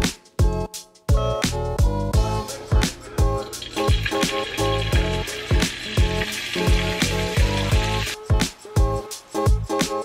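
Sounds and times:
background music with steady beat: 0:00.0 - 0:10.0
chicken sizzling in hot oil: 0:02.2 - 0:10.0.

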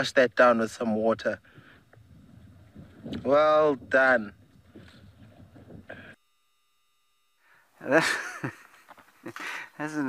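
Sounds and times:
faint outdoor background noise: 0:00.0 - 0:10.0
man laughing: 0:07.8 - 0:09.8.

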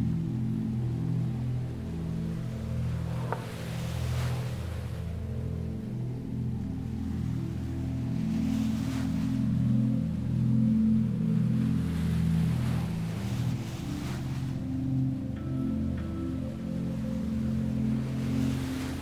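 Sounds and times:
ambient sustained chords: 0:00.0 - 0:19.0
ocean waves washing in: 0:00.0 - 0:19.0.

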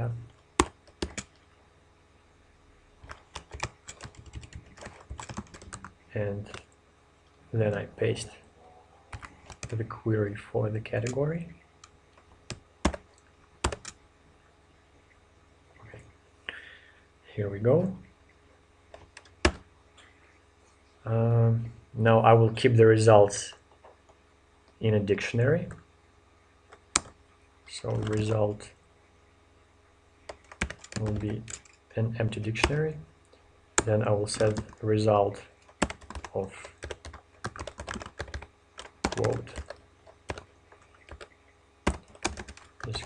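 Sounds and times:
computer keyboard keystrokes: 0:00.6 - 0:01.4, 0:03.0 - 0:05.9, 0:12.5 - 0:13.0, 0:13.6 - 0:14.0, 0:30.3 - 0:31.8, 0:35.6 - 0:41.3, 0:41.9 - 0:43.0.

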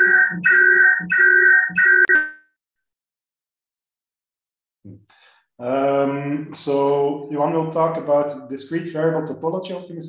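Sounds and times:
electronic ringtone chimes: 0:00.0 - 0:02.4.

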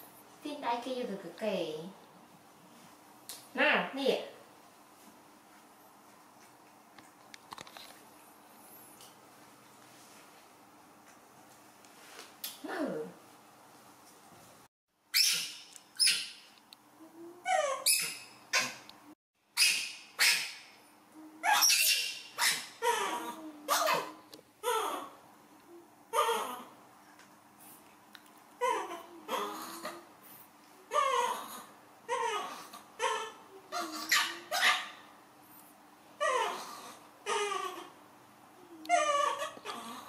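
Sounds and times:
baby monkey crying: 0:17.4 - 0:18.8, 0:21.4 - 0:25.2, 0:26.1 - 0:26.8, 0:28.6 - 0:30.0, 0:30.9 - 0:35.0, 0:36.2 - 0:38.0, 0:38.8 - 0:40.0.

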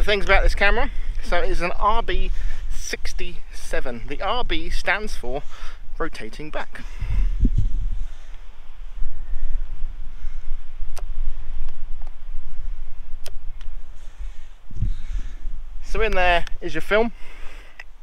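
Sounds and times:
wind rumbling on microphone: 0:00.0 - 0:18.0.

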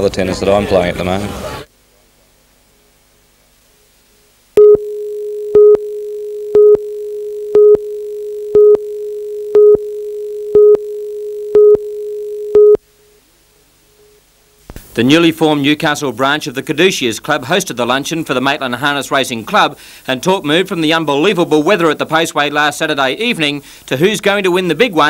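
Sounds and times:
high countdown beeps: 0:04.6 - 0:12.8
steady line-up tone: 0:04.6 - 0:14.6.

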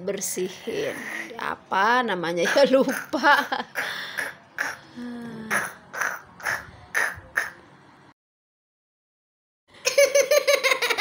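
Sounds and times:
person's breathy vocal sounds: 0:03.8 - 0:05.7.

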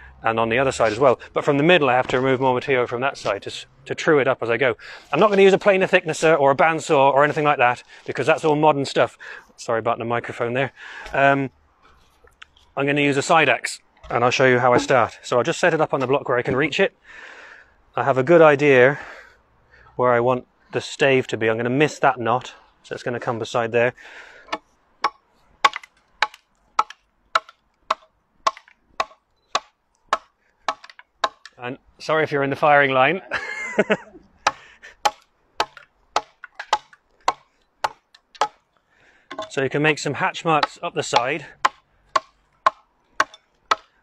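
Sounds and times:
axe chopping wood: 0:24.5 - 0:31.6, 0:34.5 - 0:38.6, 0:40.6 - 0:44.0.

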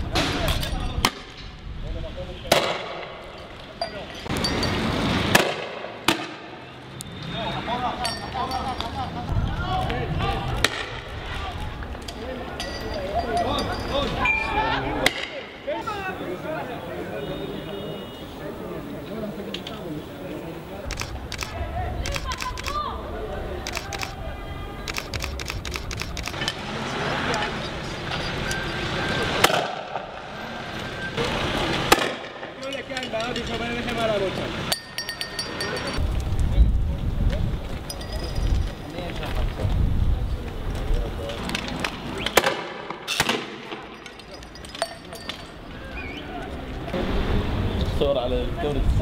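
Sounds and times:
rushing background noise: 0:00.0 - 0:49.0
voices: 0:06.4 - 0:42.9, 0:43.6 - 0:49.0
sharp clicks: 0:20.8 - 0:22.8, 0:23.6 - 0:24.2, 0:24.8 - 0:26.5.

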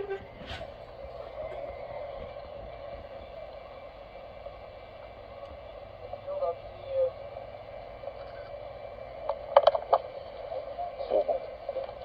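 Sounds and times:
low hum: 0:00.0 - 0:12.0
tape playback hiss: 0:00.0 - 0:12.0.

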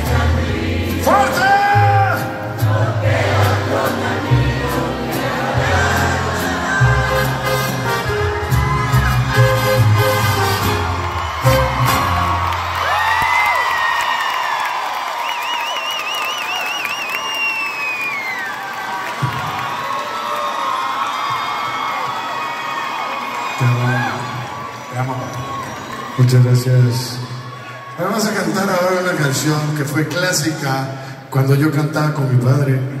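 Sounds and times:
mariachi band playing: 0:00.0 - 0:13.0
crowd cheering and whistling: 0:05.5 - 0:28.8.

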